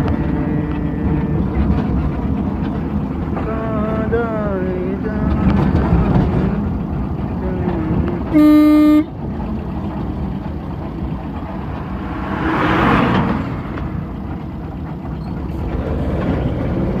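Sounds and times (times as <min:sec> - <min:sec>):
truck passing close by: 0:00.0 - 0:17.0
vehicle engine and road rumble: 0:00.0 - 0:17.0.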